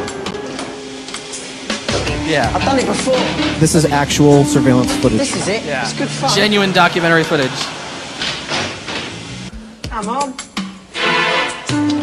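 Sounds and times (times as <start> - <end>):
music with held notes: 0.0 - 6.7, 9.5 - 12.0.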